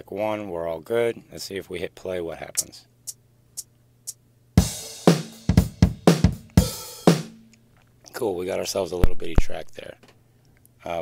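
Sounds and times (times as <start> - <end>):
acoustic drum beat: 2.6 - 7.5.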